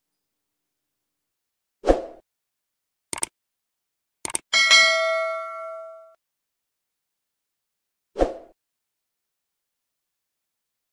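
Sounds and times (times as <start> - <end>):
bell ding: 4.5 - 6.2.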